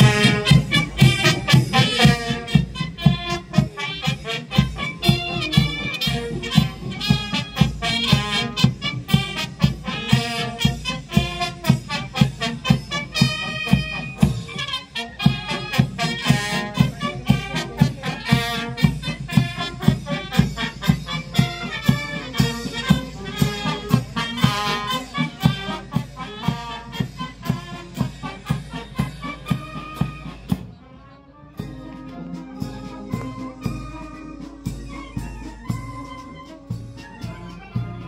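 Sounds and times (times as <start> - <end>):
brass band playing a march: 0.0 - 38.0.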